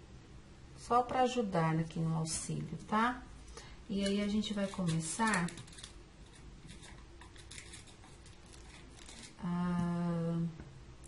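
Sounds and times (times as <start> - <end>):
woman humming: 9.4 - 10.6.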